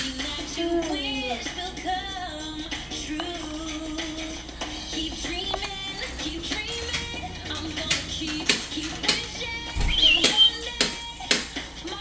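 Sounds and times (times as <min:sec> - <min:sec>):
electronic children's tune: 0:09.8 - 0:10.7.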